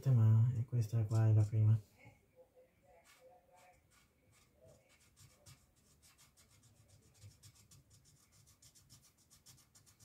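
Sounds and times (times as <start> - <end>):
marker scratching on wood: 1.0 - 1.8, 3.0 - 10.0.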